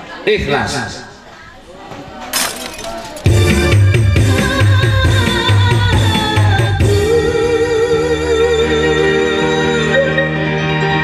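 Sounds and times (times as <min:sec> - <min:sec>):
glass shattering: 0:02.3 - 0:03.3.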